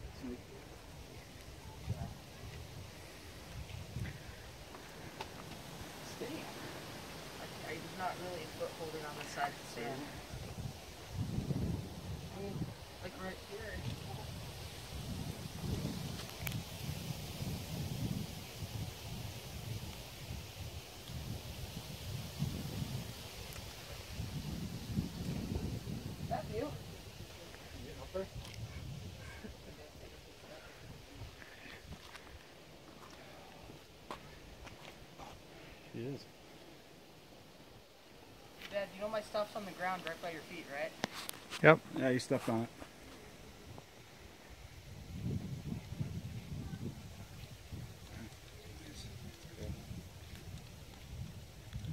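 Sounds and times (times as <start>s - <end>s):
wind buffeting microphone: 0.0s - 33.5s, 42.7s - 51.9s.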